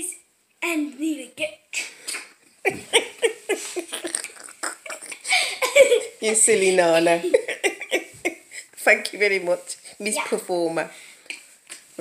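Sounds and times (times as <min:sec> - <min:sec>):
person making rough mouth noise: 0:02.1 - 0:05.2.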